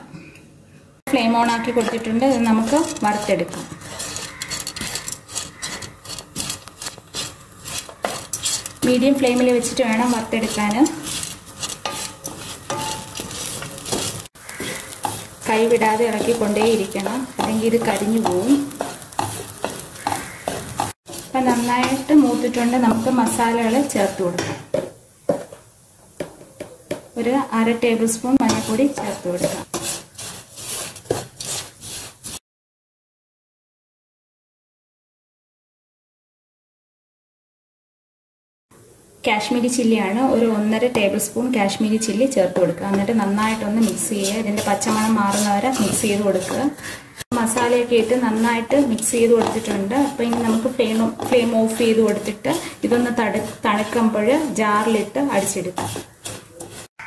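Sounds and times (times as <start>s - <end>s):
spatula scraping in a pan: 1.1s - 25.5s, 26.2s - 32.4s, 39.6s - 57.0s.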